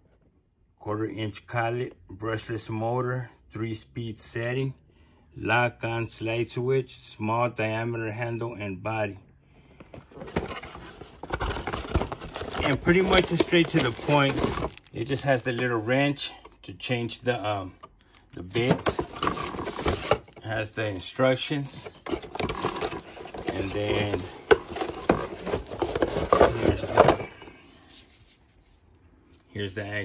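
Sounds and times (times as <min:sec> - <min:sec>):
cardboard scraping and rustling: 0:09.8 - 0:15.2, 0:18.6 - 0:20.4, 0:21.6 - 0:28.4.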